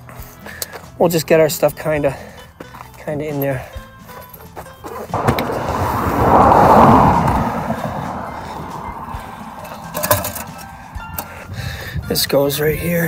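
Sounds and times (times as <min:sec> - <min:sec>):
car passing: 0:05.1 - 0:11.6.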